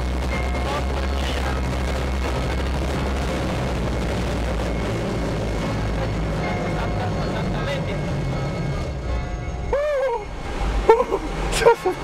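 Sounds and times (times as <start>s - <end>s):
electric rotors droning: 0.0s - 12.0s.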